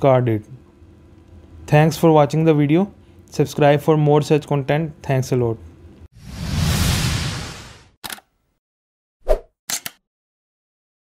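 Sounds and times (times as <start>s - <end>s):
short clicks: 9.7s - 10.0s.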